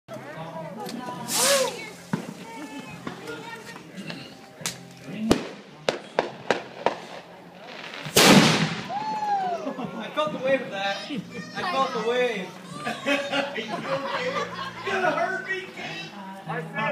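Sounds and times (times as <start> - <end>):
short hiss: 1.2 - 3.0
sharp cracks: 7.9 - 9.0
firework boom: 8.0 - 9.1.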